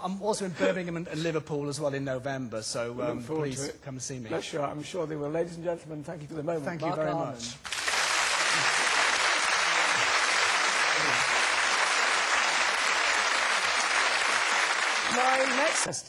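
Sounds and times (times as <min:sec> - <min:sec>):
studio audience applauding: 0:07.6 - 0:16.0.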